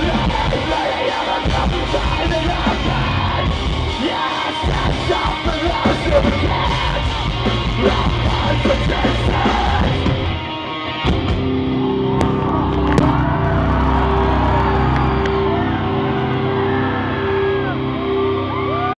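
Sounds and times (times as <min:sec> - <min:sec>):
heavy rock band playing live: 0:00.0 - 0:18.9
crowd yelling and whooping: 0:00.0 - 0:19.0.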